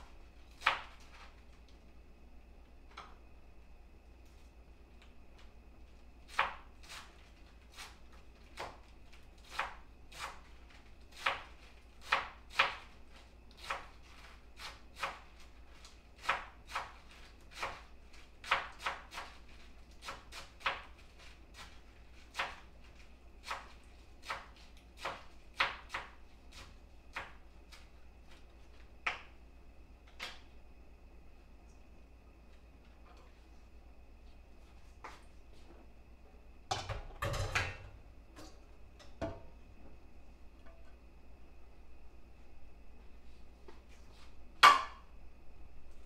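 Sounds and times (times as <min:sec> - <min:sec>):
knife chopping on cutting board: 0:11.1 - 0:12.9, 0:16.2 - 0:17.8.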